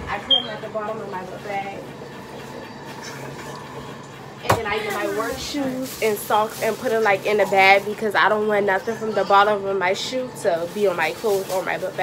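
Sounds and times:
fabric rustling: 4.7 - 8.1, 10.4 - 12.0.

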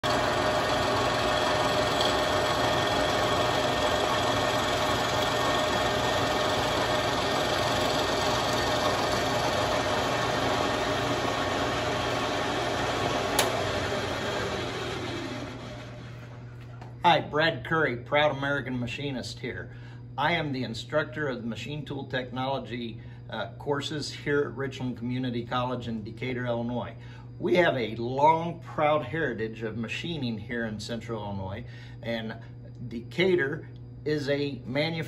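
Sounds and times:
milling machine humming and whining: 0.0 - 16.8
sharp click: 13.3 - 13.6.

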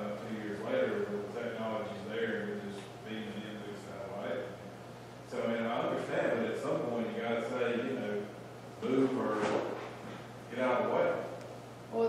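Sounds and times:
object moved against furniture: 9.2 - 10.3.

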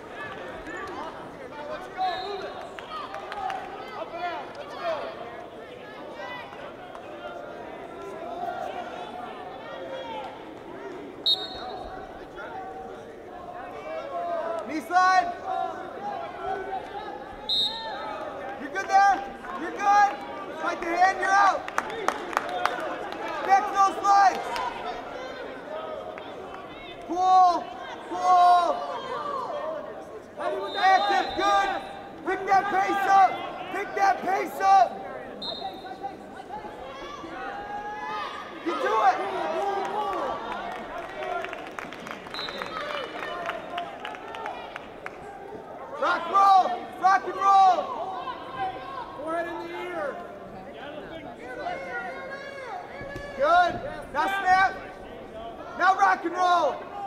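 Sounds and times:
crowd noise in arena: 0.0 - 57.0.

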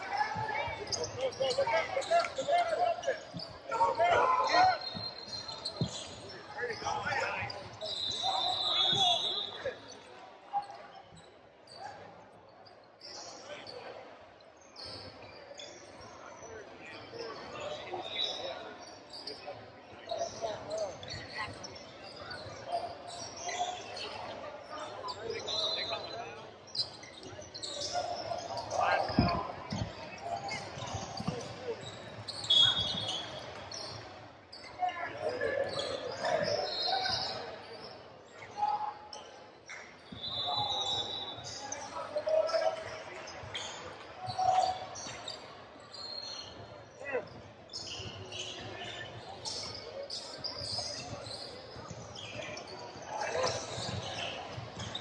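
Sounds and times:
sneaker squeaks: 0.0 - 13.8, 20.1 - 55.0.

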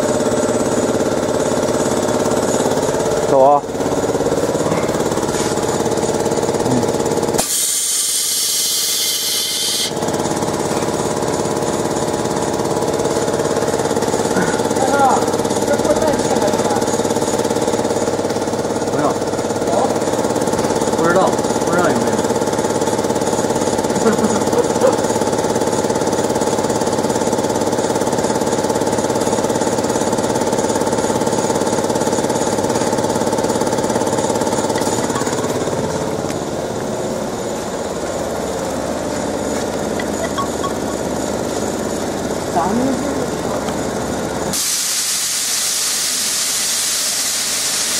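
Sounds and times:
laser cutting machine hum: 0.0 - 47.9
loud hiss: 7.4 - 10.0, 44.5 - 47.9.

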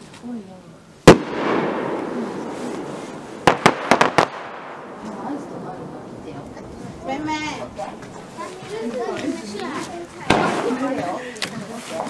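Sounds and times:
firework shell boom: 1.0 - 5.1, 10.3 - 10.7
firework sharp cracks: 1.0 - 6.2, 10.2 - 11.0.

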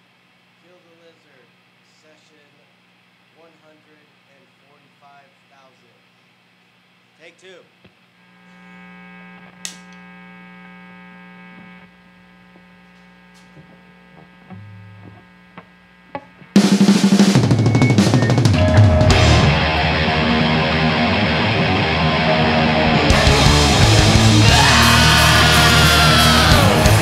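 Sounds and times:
amplifier hum: 0.0 - 27.0
clapperboard snap: 9.6 - 10.0
thrash metal band playing: 16.6 - 27.0
low bass note: 18.4 - 27.0.

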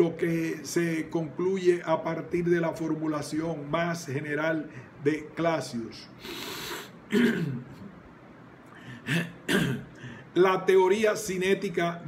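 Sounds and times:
man clearing his throat: 7.1 - 7.9, 9.0 - 10.0.

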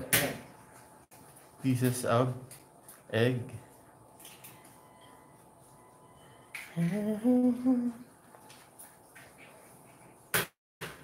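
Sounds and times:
person humming: 6.7 - 8.1.

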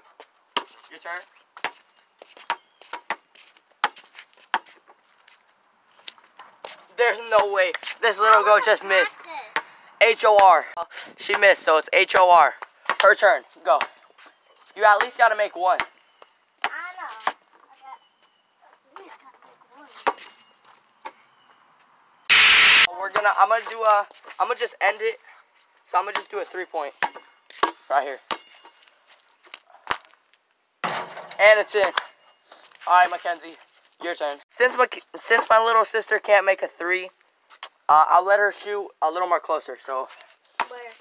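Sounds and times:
basketball bouncing on concrete: 12.6 - 13.2, 13.8 - 14.0, 14.9 - 16.0, 16.6 - 17.4, 26.1 - 26.3, 27.0 - 28.5, 40.6 - 40.9.

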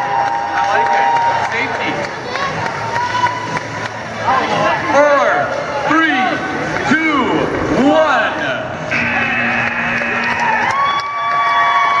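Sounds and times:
crowd shouting a countdown: 5.8 - 11.1
electronic buzzer: 8.9 - 10.3.

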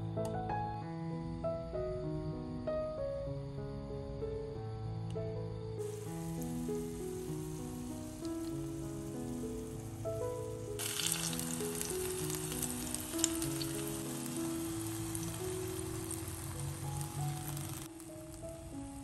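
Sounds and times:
soft background music: 0.0 - 19.0
food sizzling in oil: 5.8 - 19.0
oil crackling: 5.8 - 19.0.

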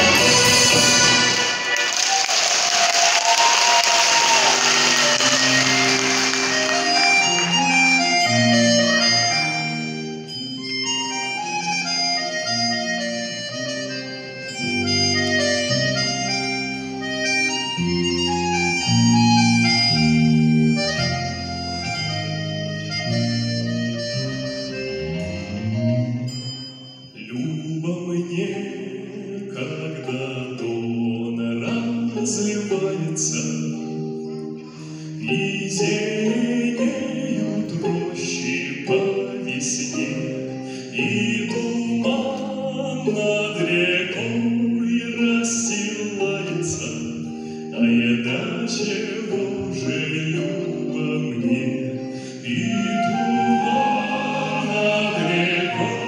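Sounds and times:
stage music sustained notes: 0.0 - 56.0
audience clapping: 1.2 - 8.1
man singing folk melody: 27.2 - 56.0.

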